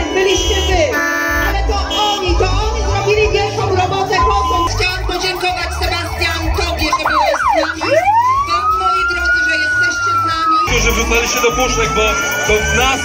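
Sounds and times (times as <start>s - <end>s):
fire engine sirens yelping: 0.0s - 13.0s
background music with low beat: 0.1s - 10.1s, 10.7s - 13.0s.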